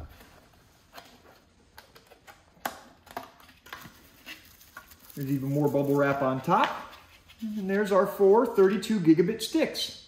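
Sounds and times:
plastic packaging clicks and crinkles: 0.9 - 6.9.

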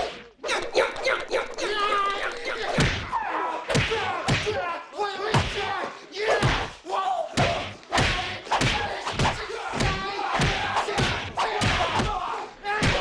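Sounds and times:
grunts and shouts: 0.0 - 13.0.

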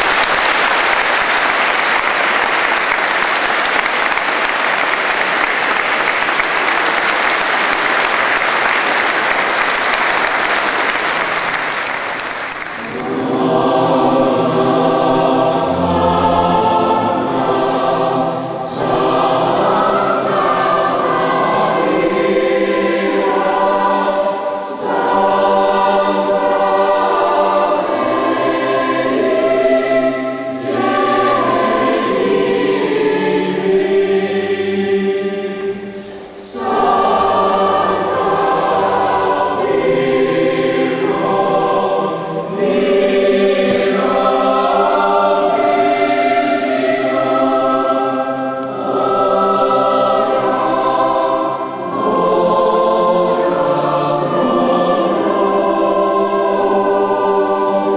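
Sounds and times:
children's choir singing: 0.0 - 57.9.

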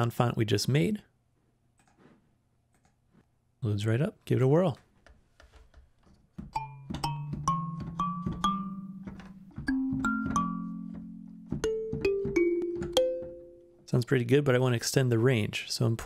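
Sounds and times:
plucked kalimba notes: 6.6 - 13.7.

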